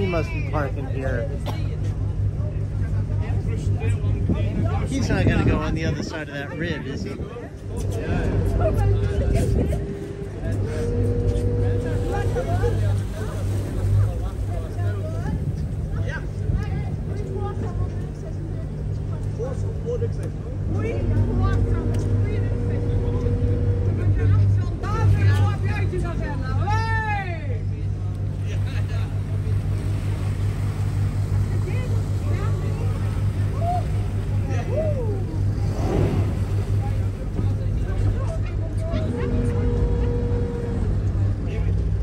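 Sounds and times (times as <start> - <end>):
boat engine running low hum: 0.0 - 42.0.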